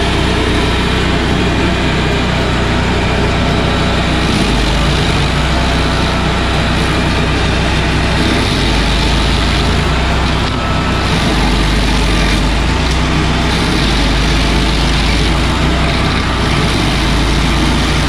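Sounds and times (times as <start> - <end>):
heavy engine running steadily: 0.0 - 18.0.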